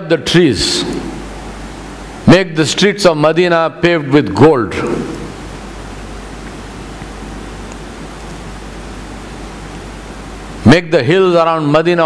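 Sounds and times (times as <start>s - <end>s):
room noise hiss: 0.0s - 12.0s
low hum: 4.4s - 10.6s.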